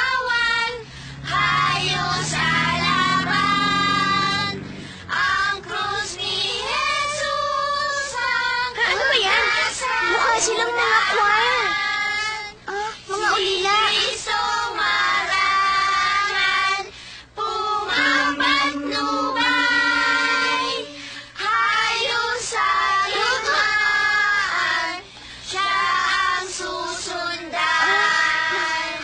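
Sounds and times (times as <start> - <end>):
children's choir singing: 0.0 - 12.4, 13.2 - 29.0.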